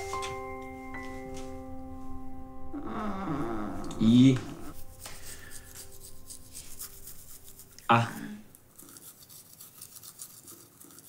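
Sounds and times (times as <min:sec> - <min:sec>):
toothbrush scrubbing teeth: 0:04.6 - 0:11.0.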